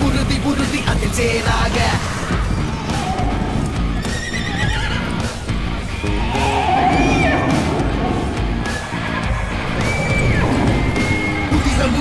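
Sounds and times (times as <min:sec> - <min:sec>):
hooves galloping: 0:00.0 - 0:12.0
loud background music: 0:00.0 - 0:12.0
horses whinnying: 0:01.8 - 0:11.8.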